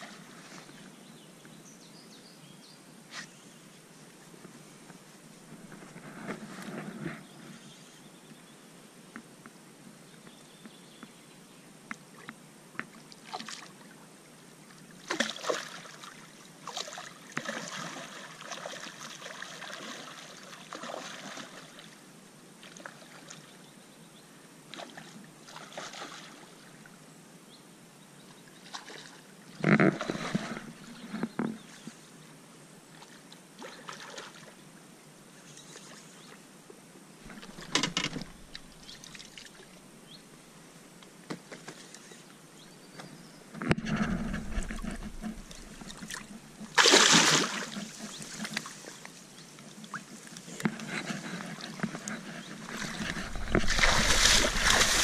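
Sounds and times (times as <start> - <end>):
water splashing and sloshing: 12.8 - 14.0, 15.0 - 22.0, 24.7 - 26.7, 28.6 - 31.5, 32.9 - 34.6, 37.2 - 39.9, 43.6 - 55.0.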